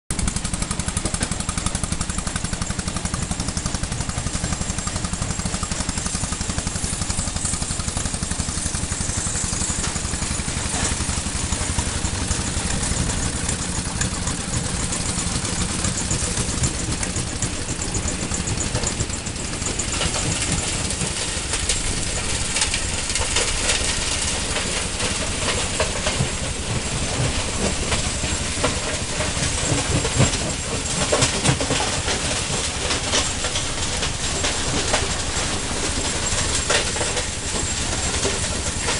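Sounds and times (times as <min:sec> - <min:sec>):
crusher machinery rumbling: 0:00.1 - 0:38.9.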